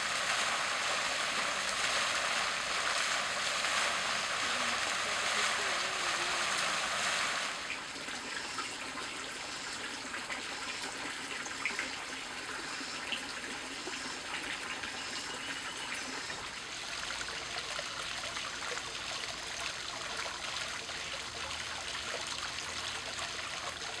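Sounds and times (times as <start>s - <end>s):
fountain water splashing into pool: 0.0s - 15.0s, 15.6s - 24.0s.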